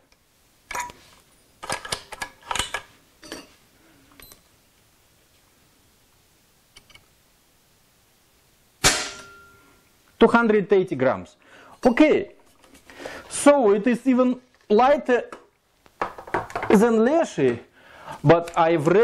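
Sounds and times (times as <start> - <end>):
air rifle firing crack: 8.8 - 9.3.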